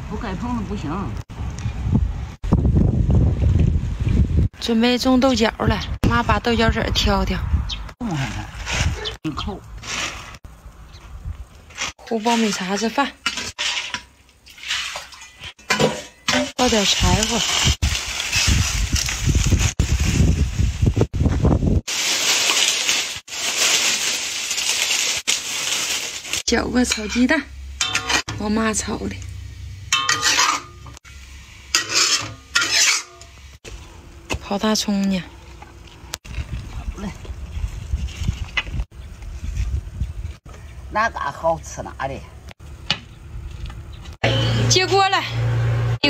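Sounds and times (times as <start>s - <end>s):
wind buffeting microphone: 1.3s - 9.3s, 16.7s - 21.9s, 36.2s - 40.5s
dry stalks rustling: 7.8s - 41.0s
hoe blade scraping dry soil: 11.7s - 14.0s, 31.7s - 33.2s.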